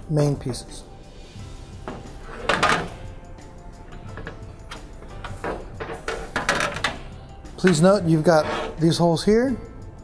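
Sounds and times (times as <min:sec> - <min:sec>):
soft background music: 0:00.0 - 0:10.0
metal panels rattling: 0:01.9 - 0:03.1, 0:03.9 - 0:08.8.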